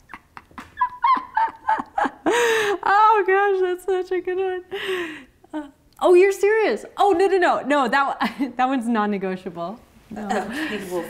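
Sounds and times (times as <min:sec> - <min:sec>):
woman laughing: 0:00.0 - 0:03.2.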